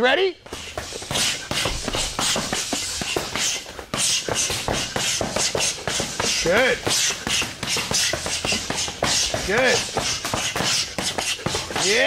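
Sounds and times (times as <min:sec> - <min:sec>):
punches smacking focus mitts: 0:00.5 - 0:12.0.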